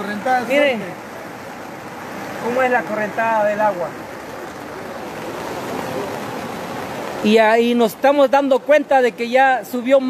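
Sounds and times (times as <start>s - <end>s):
floodwater rushing: 0.0s - 10.0s.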